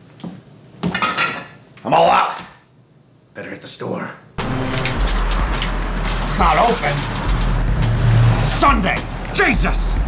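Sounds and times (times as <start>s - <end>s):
small hard objects clattering: 4.4s - 7.7s.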